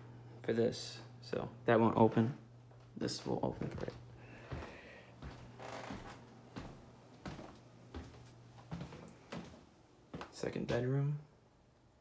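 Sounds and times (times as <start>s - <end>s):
steady low hum: 0.0s - 12.0s
footsteps on hardwood floor: 2.7s - 10.8s.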